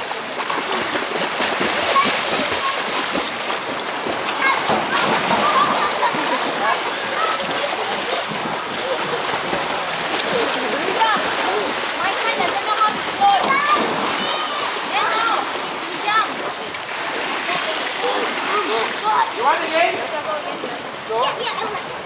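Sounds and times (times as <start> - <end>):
children splashing in pool: 0.0 - 22.0
children calling out: 1.8 - 3.1, 4.2 - 8.1, 10.4 - 16.5.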